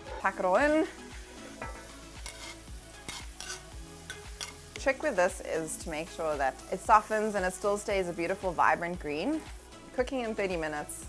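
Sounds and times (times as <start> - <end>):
leeks sizzling in a pan: 0.0 - 11.0
soft music beat: 0.0 - 11.0
knife scraping stone board: 1.6 - 3.6.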